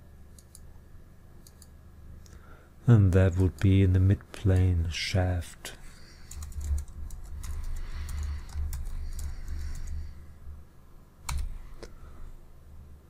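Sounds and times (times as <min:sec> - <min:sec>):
typing on keyboard: 0:06.2 - 0:10.0, 0:11.2 - 0:11.5
loud keyboard click: 0:11.2 - 0:11.5.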